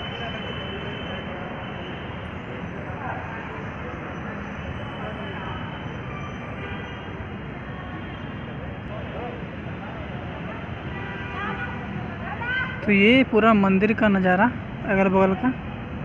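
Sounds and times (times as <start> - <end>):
distant people talking: 0.0 - 16.0
outdoor background din: 0.0 - 16.0.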